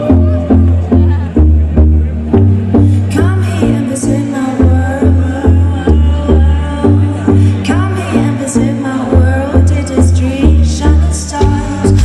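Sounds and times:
live band playing dance-pop: 0:06.2 - 0:12.0.

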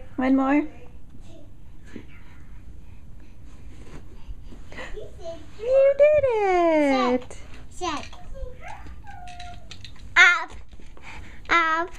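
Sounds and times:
toddler babbling: 0:08.0 - 0:09.8.

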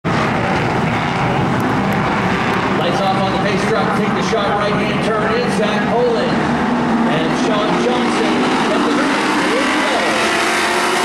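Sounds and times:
stock car engines droning: 0:00.0 - 0:11.0.

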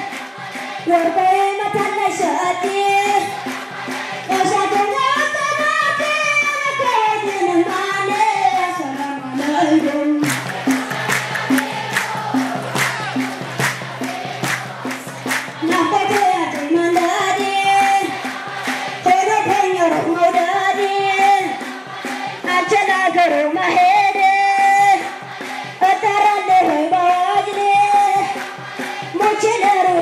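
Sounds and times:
group singing a devotional song: 0:00.0 - 0:30.0
hand clapping in time: 0:00.0 - 0:30.0.

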